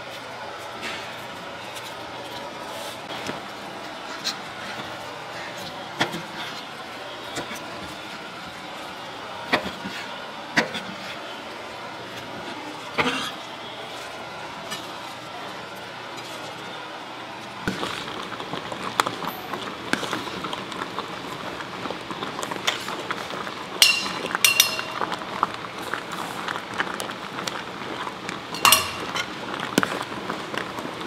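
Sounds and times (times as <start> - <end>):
shop background noise: 0.0 - 31.0
clinks: 23.8 - 25.2, 28.6 - 29.3.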